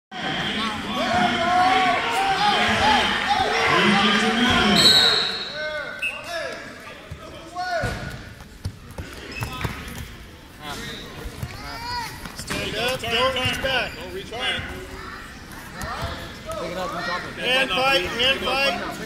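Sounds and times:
high whistle: 0:04.8 - 0:06.3
shoe squeaks on gym floor: 0:09.2 - 0:09.9.

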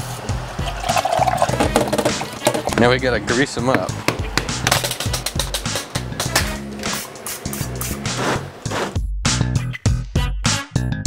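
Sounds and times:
background music: 0:00.0 - 0:11.0
tap water running into glass: 0:00.6 - 0:02.8.

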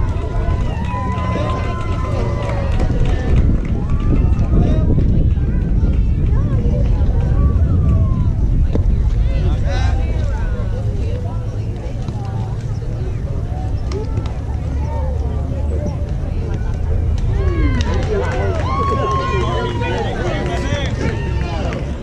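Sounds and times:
people chattering and calling out: 0:00.0 - 0:22.0
wind rumble on microphone: 0:00.0 - 0:22.0.

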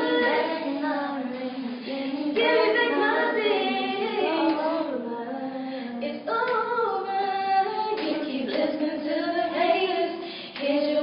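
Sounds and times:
girls singing a cappella: 0:00.0 - 0:11.0.

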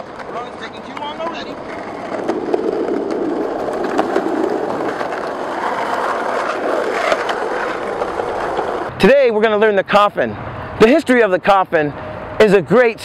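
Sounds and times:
skateboard wheel clicks over bumps: 0:00.0 - 0:08.9
skateboard wheels rolling on asphalt: 0:00.0 - 0:09.1.

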